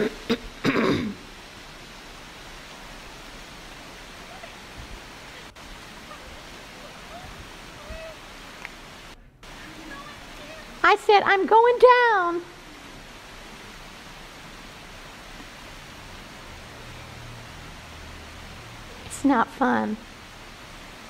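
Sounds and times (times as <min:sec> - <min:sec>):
person coughing: 0:00.0 - 0:01.2
running water: 0:00.0 - 0:21.0.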